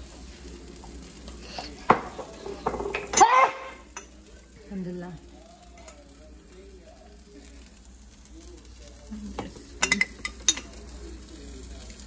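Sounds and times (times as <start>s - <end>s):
food sizzling on a griddle: 0.0s - 12.0s
spoon clinking on a glass jar: 9.8s - 10.7s.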